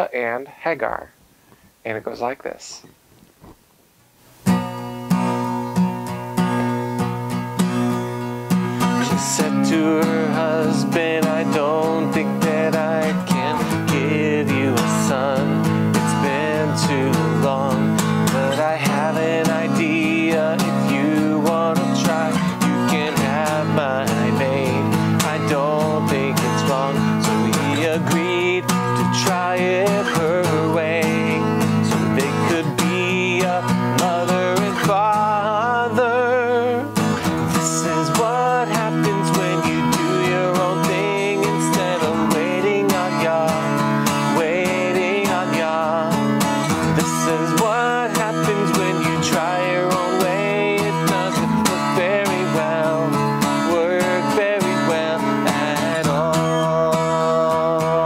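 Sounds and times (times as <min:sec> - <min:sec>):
acoustic guitar strumming: 0:04.3 - 0:58.0
man singing: 0:08.9 - 0:58.0.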